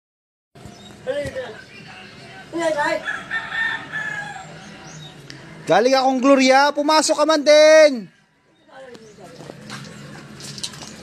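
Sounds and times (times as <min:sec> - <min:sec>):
rooster crowing: 0:03.0 - 0:05.1.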